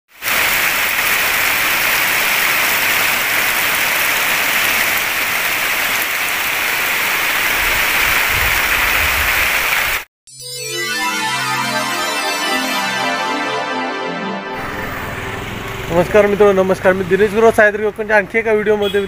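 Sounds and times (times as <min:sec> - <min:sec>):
heavy rain falling: 0:00.1 - 0:10.1, 0:14.6 - 0:17.2
water streaming off roof: 0:00.1 - 0:10.1.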